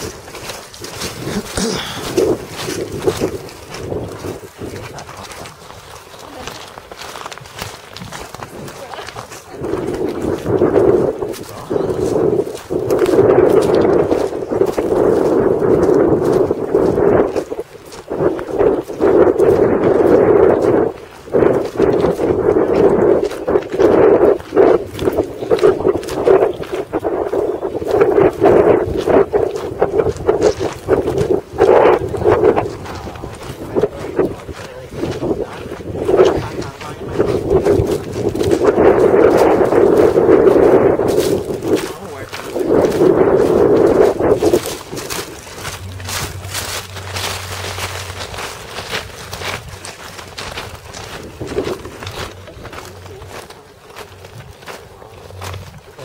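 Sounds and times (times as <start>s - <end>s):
microphone rubbing and buffeting: 0.0s - 56.0s
jacket fabric brushing: 44.0s - 55.3s.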